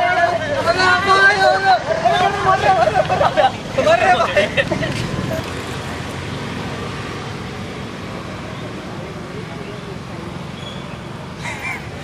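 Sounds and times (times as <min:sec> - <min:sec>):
young men shouting and laughing: 0:00.0 - 0:05.4.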